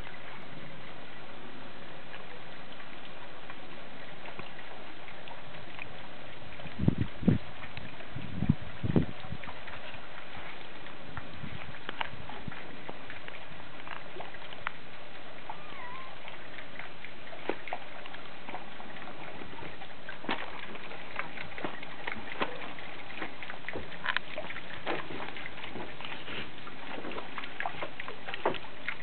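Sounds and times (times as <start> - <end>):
rain and water splashing: 0.0 - 29.0
water drips: 0.0 - 29.0.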